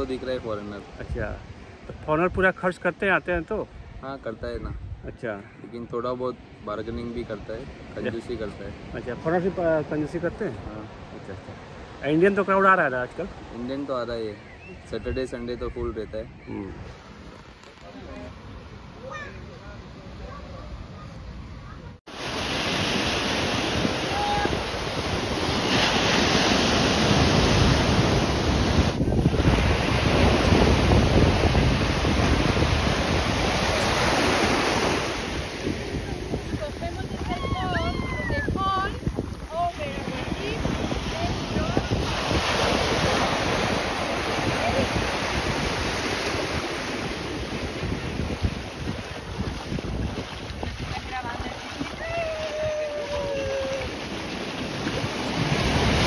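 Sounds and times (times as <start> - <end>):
wind buffeting microphone: 3.6 - 5.6, 22.7 - 56.0
sea waves breaking: 6.2 - 15.0, 16.3 - 56.0.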